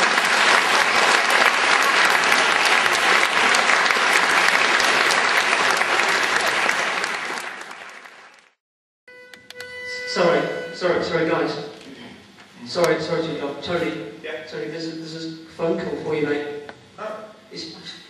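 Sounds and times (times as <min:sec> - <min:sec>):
audience applauding: 0:00.0 - 0:08.6.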